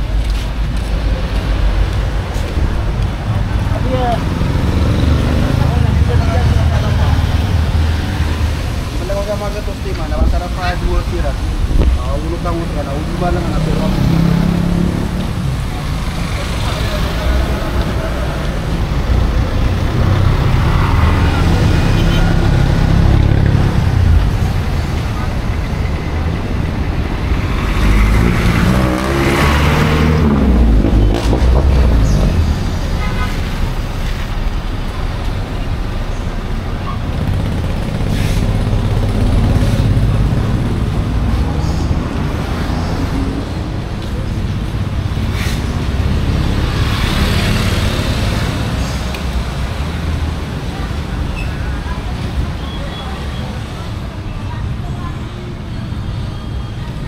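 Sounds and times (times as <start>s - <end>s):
traffic on wet road: 0.0s - 57.0s
vehicle passing close: 11.1s - 50.9s.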